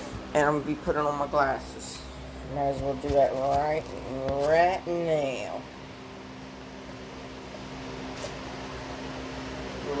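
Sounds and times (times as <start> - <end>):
electric fan humming: 0.0 - 10.0.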